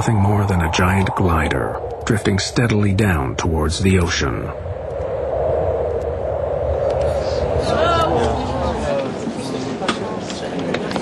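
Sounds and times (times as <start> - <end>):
low rumble: 0.0 - 9.4
wind rushing: 0.0 - 9.8
faint voice: 7.2 - 11.0.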